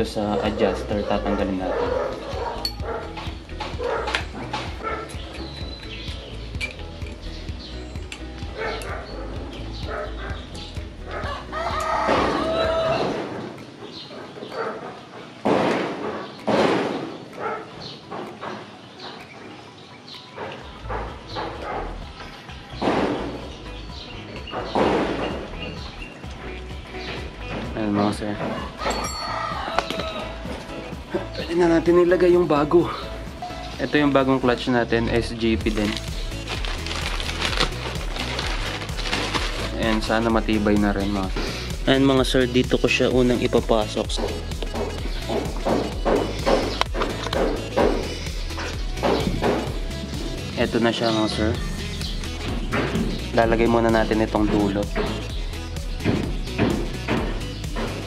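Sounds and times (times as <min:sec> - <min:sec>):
background music: 0:00.0 - 0:58.0.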